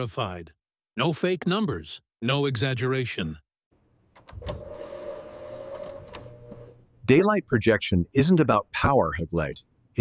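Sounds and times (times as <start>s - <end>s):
small motor whirring: 4.4s - 6.8s.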